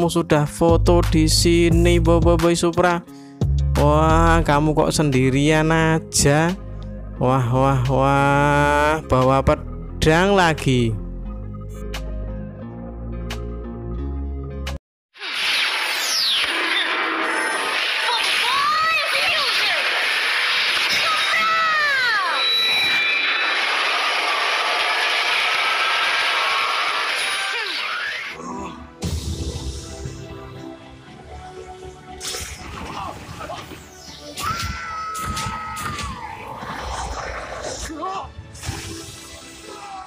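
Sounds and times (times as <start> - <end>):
rushing sound effect: 15.2 - 28.3
falling zing: 15.2 - 28.4
action background music: 28.7 - 40.0.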